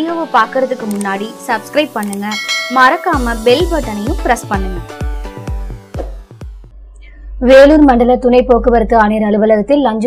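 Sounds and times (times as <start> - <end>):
background music: 0.0 - 10.0
bell-like chime: 2.3 - 3.3.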